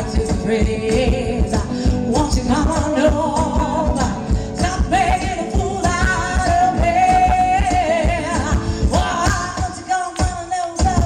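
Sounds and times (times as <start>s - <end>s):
electric guitar: 0.0s - 11.0s
woman singing into a microphone: 0.0s - 11.0s.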